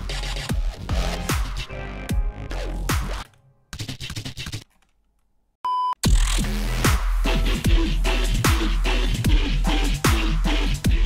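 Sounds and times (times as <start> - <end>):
electronic music with clicky hits: 0.0 - 4.7
short electronic beep: 5.7 - 6.0.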